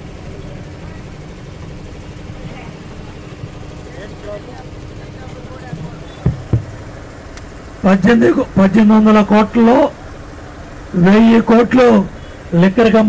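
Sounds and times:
crowd voices: 0.0s - 8.0s
low mechanical hum: 0.0s - 13.0s.

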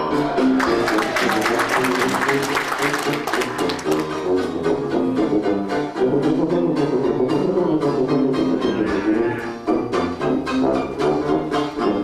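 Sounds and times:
audience applauding: 0.5s - 4.4s.

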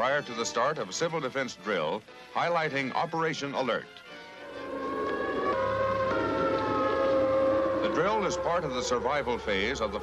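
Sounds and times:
air raid siren wailing: 4.1s - 10.0s.

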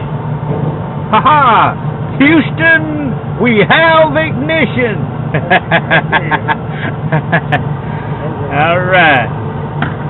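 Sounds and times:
man laughing: 5.3s - 7.7s.

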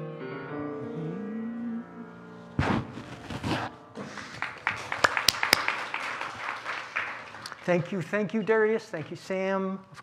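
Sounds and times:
small audience clapping: 4.0s - 8.1s.

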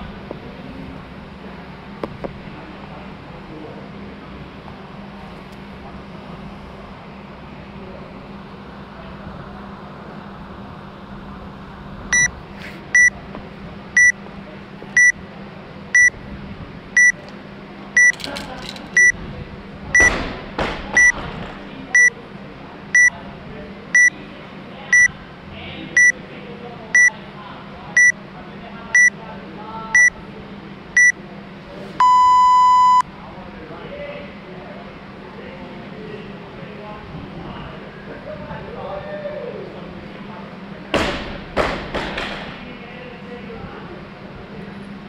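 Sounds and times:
long lower beep: 28.0s - 28.2s, 32.0s - 33.1s
short high beeps: 32.0s - 33.0s.

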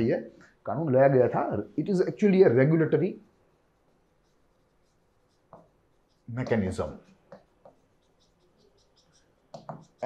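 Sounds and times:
man speaking: 0.0s - 3.2s, 6.3s - 7.0s
stylus tapping on glass screen: 9.5s - 10.0s.

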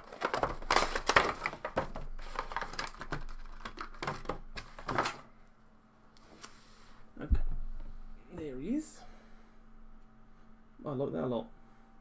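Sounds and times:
cardboard box packaging crackling: 0.0s - 5.2s.

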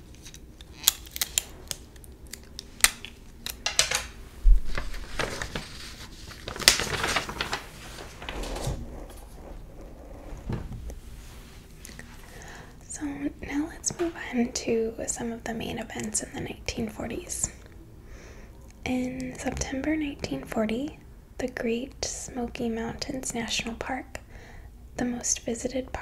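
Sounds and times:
woman whispering softly: 18.8s - 21.0s.

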